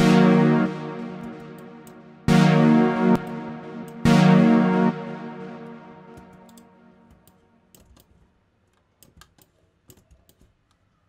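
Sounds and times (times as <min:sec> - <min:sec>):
keyboard clicking: 0:06.1 - 0:08.2
computer mouse clicking: 0:06.2 - 0:10.8.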